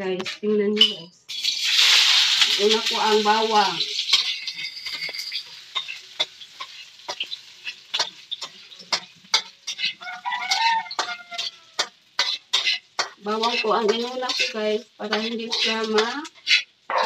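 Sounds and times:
faint sizzle: 1.3s - 17.0s
utensil scraping in frying pan: 1.3s - 17.0s
chicken calling: 10.0s - 11.8s.

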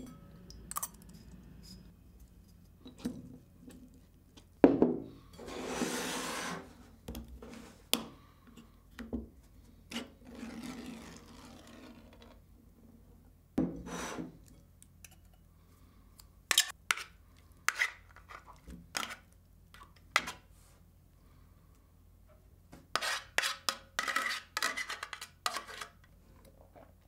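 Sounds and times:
container scraping on table: 5.4s - 6.8s
fork scraping tin can: 23.0s - 26.0s.

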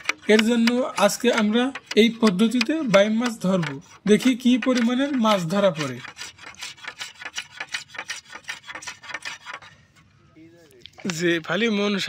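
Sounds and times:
blade scraping bamboo: 0.0s - 10.2s.

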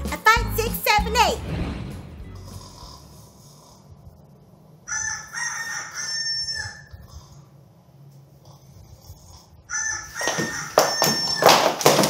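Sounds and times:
cheerful intro music: 0.0s - 3.2s
rooster crowing: 4.8s - 7.0s, 9.7s - 11.6s.

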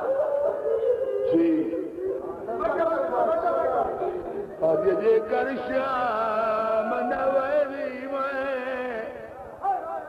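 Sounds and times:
man chanting a lament: 0.0s - 10.0s.

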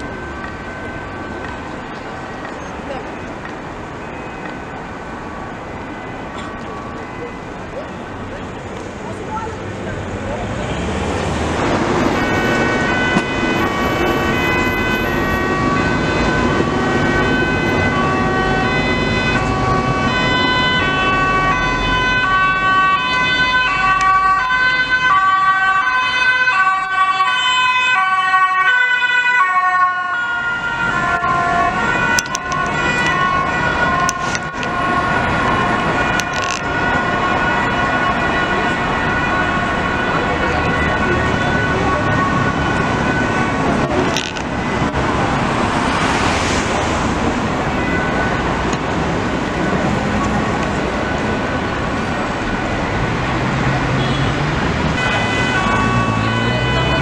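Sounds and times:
ambulance two-tone siren: 0.0s - 8.6s, 10.7s - 57.0s
passing traffic: 0.0s - 57.0s.

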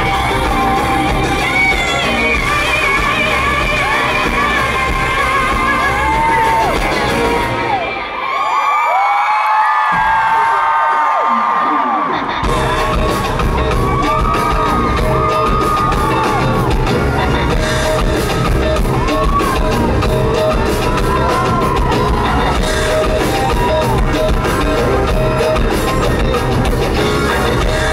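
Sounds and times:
drums: 0.0s - 8.2s, 9.6s - 27.9s
pop-rock band playing loudly: 0.0s - 8.2s, 12.0s - 27.9s
crowd screaming: 0.0s - 27.9s.

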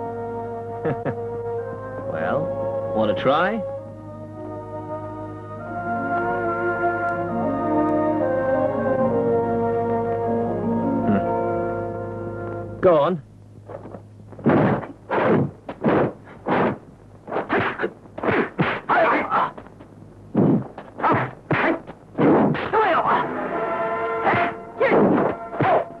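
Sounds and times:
steady music tones: 0.0s - 17.3s, 19.5s - 26.0s
punch impacts: 14.4s - 18.9s, 20.4s - 22.8s, 24.3s - 25.9s
shouted fighting cries: 22.7s - 23.4s.

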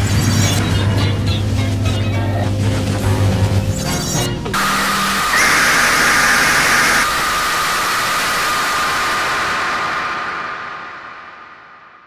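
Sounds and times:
harsh static-like noise: 4.6s - 12.0s
high whine: 4.6s - 12.0s.

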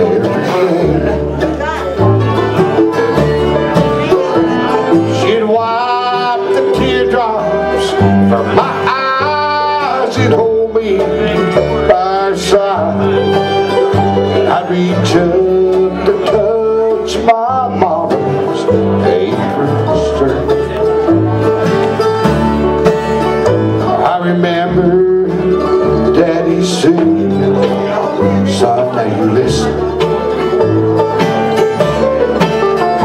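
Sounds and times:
man singing: 0.0s - 21.4s, 23.4s - 30.4s
banjo: 0.0s - 33.0s
fiddle: 0.0s - 33.0s
mandolin: 0.0s - 33.0s
strummed acoustic guitar: 0.0s - 33.0s
upright bass: 0.0s - 33.0s.

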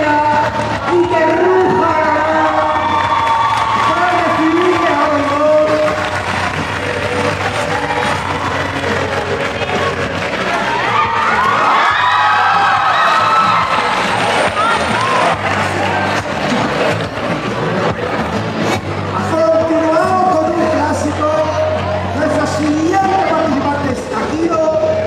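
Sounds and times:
audience cheering and shouting: 0.0s - 18.0s
stage music over loudspeakers: 0.0s - 25.0s
voice in music: 0.0s - 25.0s.

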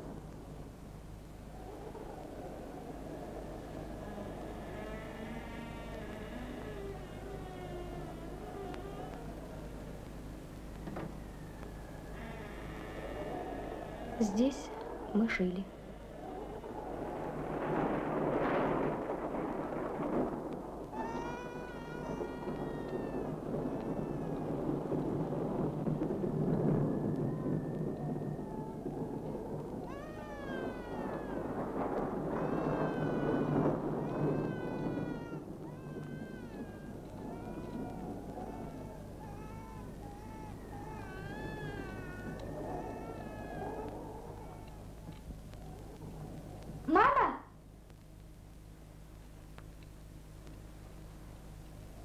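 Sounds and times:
low rumbling noise: 0.0s - 52.0s.

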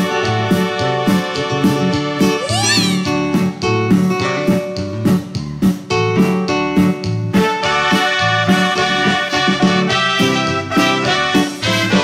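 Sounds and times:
high sliding note: 2.4s - 3.7s
live dance band playing: 2.4s - 3.9s.

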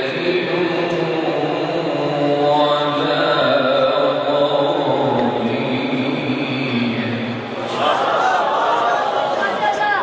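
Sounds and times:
man chanting melodic recitation: 0.0s - 7.6s.

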